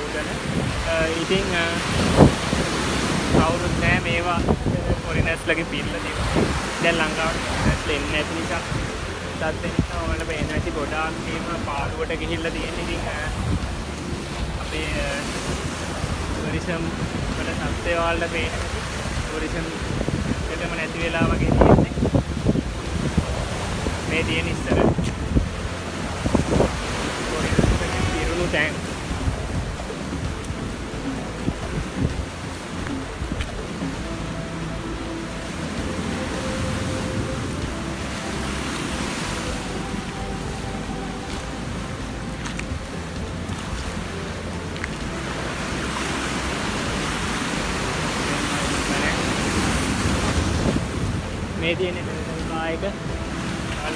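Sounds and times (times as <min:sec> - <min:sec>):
man talking: 0:00.0 - 0:13.6, 0:14.6 - 0:22.2, 0:23.4 - 0:25.2, 0:27.1 - 0:29.0, 0:48.1 - 0:49.9, 0:51.6 - 0:53.1
background music: 0:00.0 - 0:53.9
surf washing over rocks: 0:00.0 - 0:53.9
wind buffeting microphone: 0:00.0 - 0:53.9.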